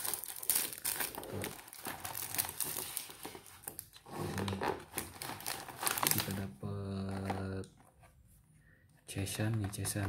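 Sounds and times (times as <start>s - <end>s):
plastic bag crinkling: 0.0s - 7.8s.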